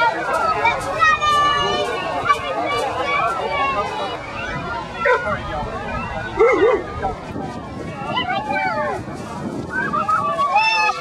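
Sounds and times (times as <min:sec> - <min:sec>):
crowd chatter: 0:00.0 - 0:11.0
dog barking: 0:05.0 - 0:05.3, 0:06.4 - 0:06.9.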